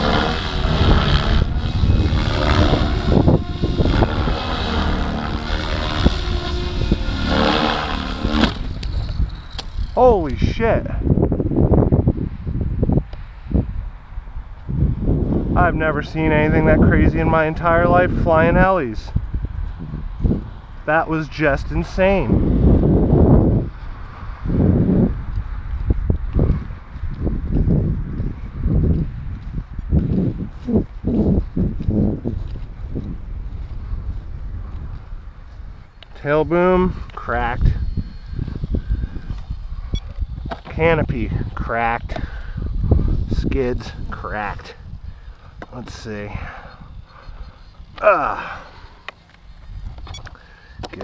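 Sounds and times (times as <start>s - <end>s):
wind buffeting microphone: 0.0s - 51.0s
footsteps through grass: 25.2s - 35.8s.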